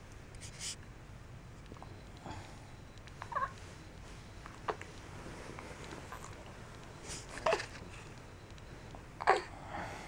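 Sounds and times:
soft breathy rustle: 2.2s - 10.0s.

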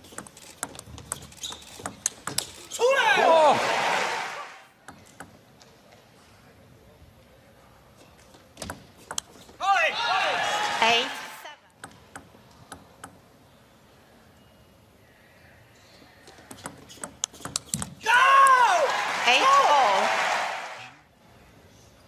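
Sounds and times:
crowd shouting and cheering: 2.8s - 4.7s, 9.6s - 11.4s, 18.0s - 21.0s.

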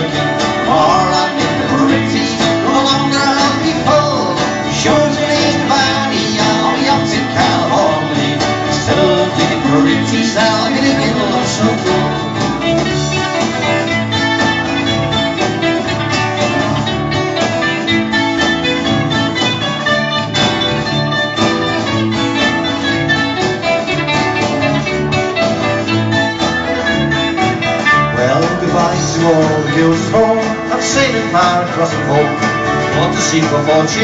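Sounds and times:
keyboard backing: 0.0s - 34.0s
strummed acoustic guitar: 0.0s - 34.0s.

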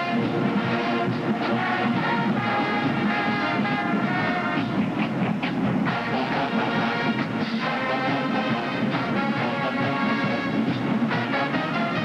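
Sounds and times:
drum strokes: 0.0s - 12.0s
marching band brass chord: 0.0s - 12.0s.

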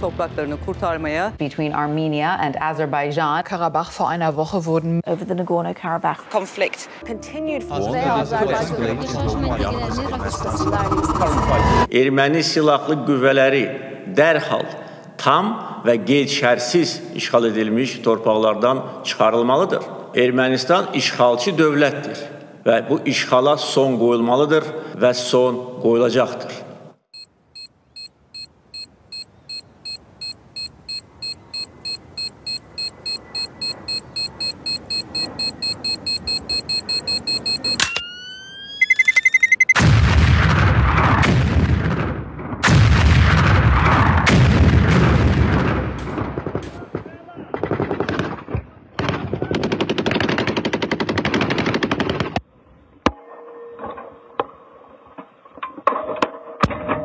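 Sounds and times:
rising sweep: 7.0s - 11.9s
electronic beeps: 7.8s - 11.9s, 27.2s - 39.8s
explosions: 39.8s - 49.3s
gunfire: 39.8s - 52.4s.

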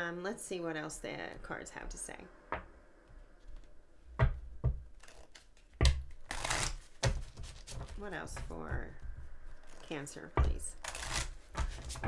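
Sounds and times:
cards being shuffled: 4.9s - 8.4s, 9.4s - 12.0s.

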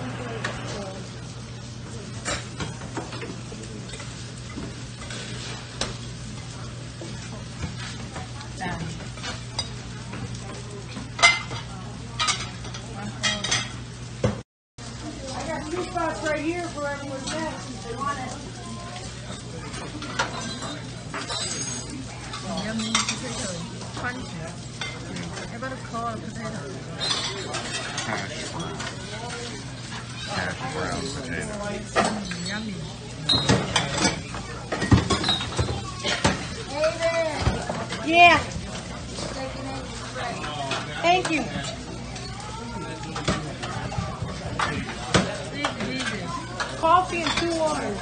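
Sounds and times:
frying on a griddle: 0.0s - 48.0s
metal utensils and dishes clattering: 2.1s - 6.5s, 7.1s - 13.8s, 15.2s - 48.0s.

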